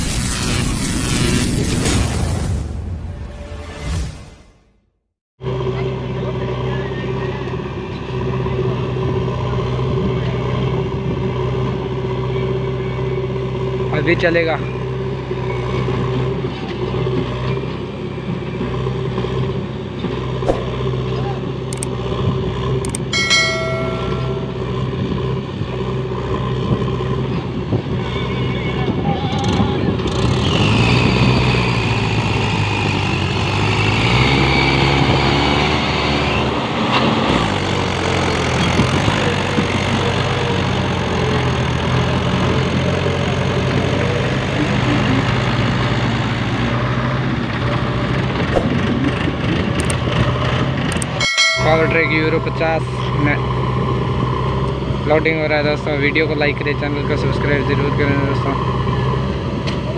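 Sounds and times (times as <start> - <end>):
tractor engine under load: 28.9 - 59.9.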